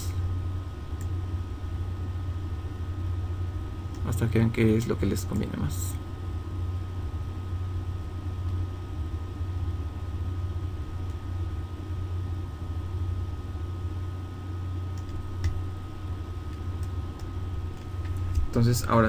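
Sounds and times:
low hum with hiss: 0.0 - 19.0.

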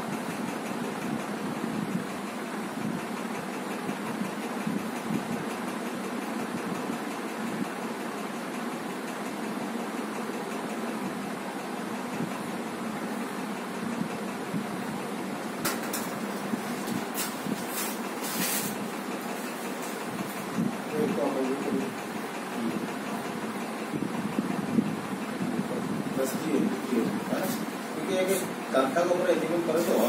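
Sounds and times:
mechanical hum and whir: 0.0 - 30.0.

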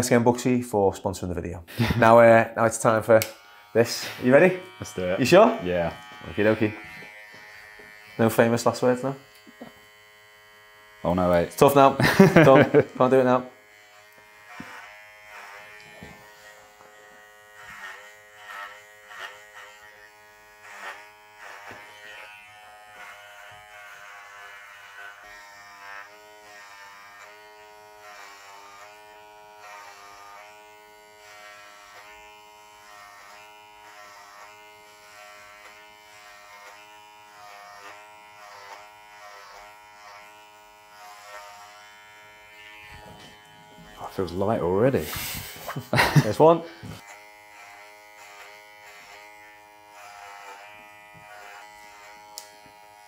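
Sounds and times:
electric hair clippers buzzing: 2.8 - 53.0.

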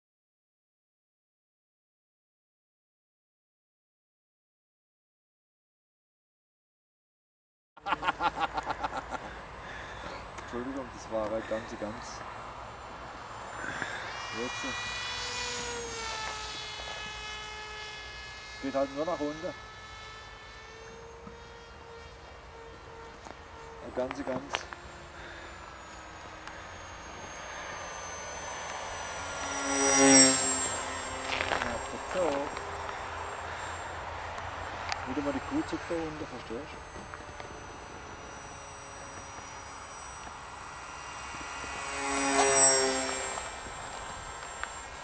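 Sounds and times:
thin electric motor whine: 7.9 - 45.0
distant motor-glider rushing: 8.1 - 45.0.

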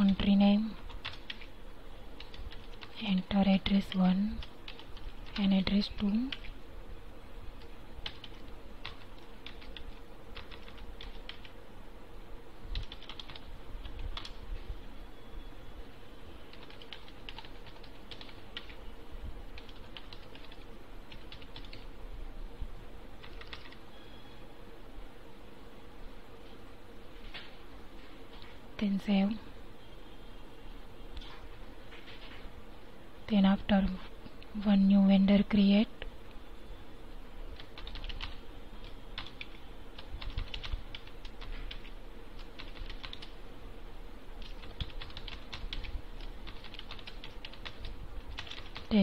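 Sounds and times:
person speaking: 0.0 - 0.9, 2.9 - 4.6, 5.2 - 6.5, 28.8 - 29.6, 48.8 - 49.0
keyboard typing: 0.0 - 1.5, 2.2 - 6.6, 7.6 - 11.6, 12.7 - 14.4, 16.5 - 18.8, 19.6 - 21.9, 23.2 - 23.9, 37.6 - 43.4, 44.4 - 49.0
faint steady hum: 0.0 - 49.0.

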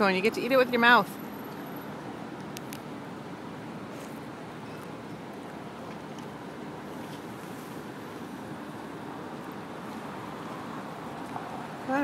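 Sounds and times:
distant city traffic hum: 0.0 - 12.0.

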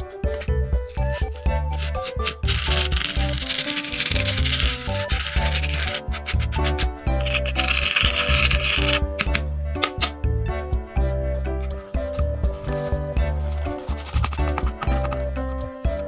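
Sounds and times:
background music: 0.0 - 16.0
spoon scraping sand: 1.0 - 10.1, 12.6 - 15.2.

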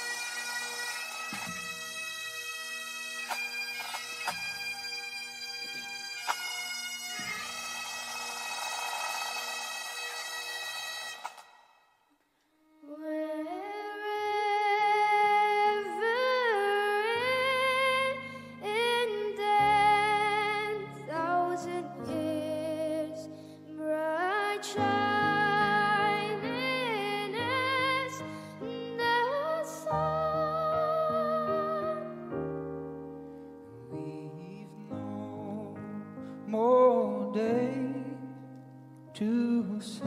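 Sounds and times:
bagpipes playing over drones: 0.0 - 11.6
violin melody with vibrato: 0.0 - 11.8, 12.7 - 32.4
snare drum strokes: 7.9 - 11.7.

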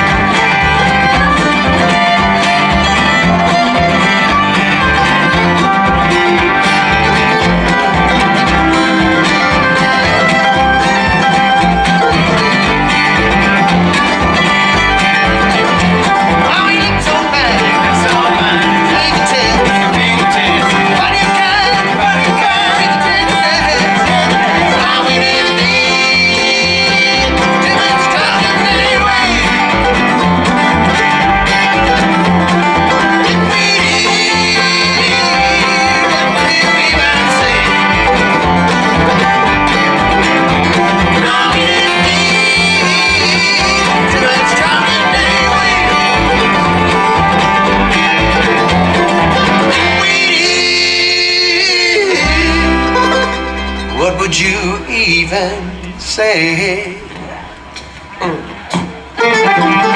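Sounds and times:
acoustic guitar: 0.0 - 59.9
fiddle: 0.0 - 59.9
mandolin: 0.0 - 59.9
resonator guitar: 0.0 - 59.9
upright bass plucking: 0.0 - 59.9.

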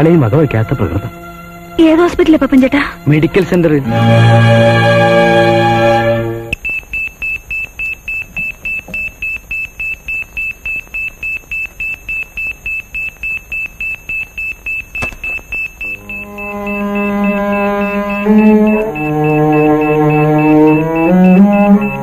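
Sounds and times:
music: 0.0 - 6.6, 16.0 - 22.0
heart monitor beeping: 6.5 - 22.0.

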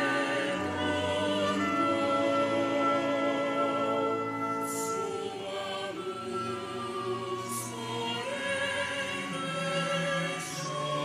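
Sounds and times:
mixed choir singing a hymn: 0.0 - 11.0.

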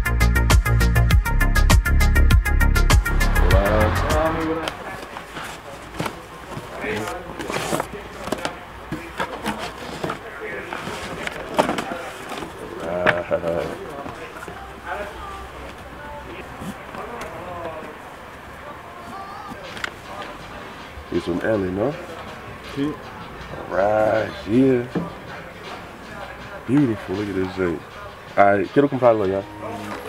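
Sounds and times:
voices talking indistinctly: 3.2 - 30.0.

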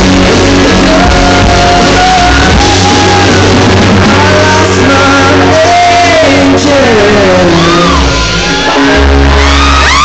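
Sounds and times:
heavy bass line: 0.0 - 10.0
live band music: 0.0 - 10.0.

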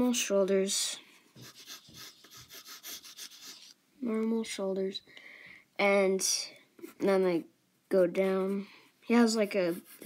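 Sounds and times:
pencil scratching on paper: 1.4 - 3.8, 9.5 - 10.0.

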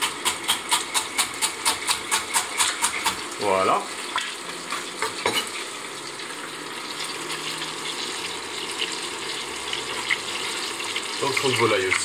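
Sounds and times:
meat sizzling in a pot: 0.0 - 12.0.

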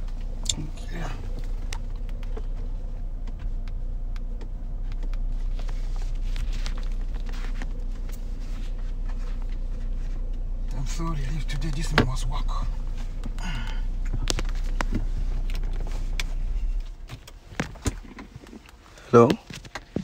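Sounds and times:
car cabin engine hum: 0.0 - 20.0.

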